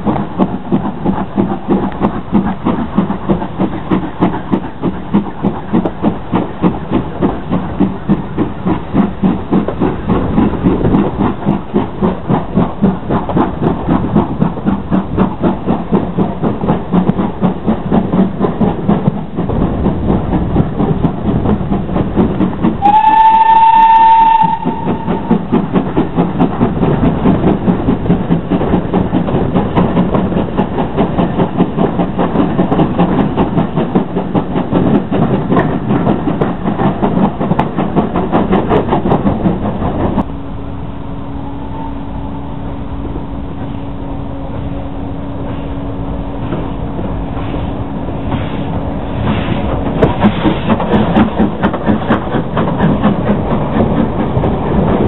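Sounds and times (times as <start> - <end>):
running train beat: 0.0 - 55.0
steam locomotive whistle: 22.8 - 25.3, 41.3 - 42.6.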